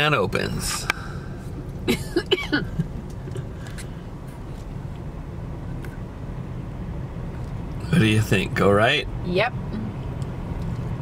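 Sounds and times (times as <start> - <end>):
car cabin low rumble: 0.0 - 11.0.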